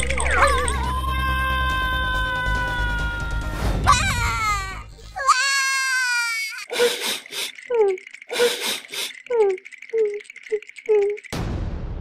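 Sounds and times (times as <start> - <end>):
fast continuous rattle: 0.0 - 0.9, 6.9 - 11.4
cartoon character vocal cries: 0.4 - 6.7.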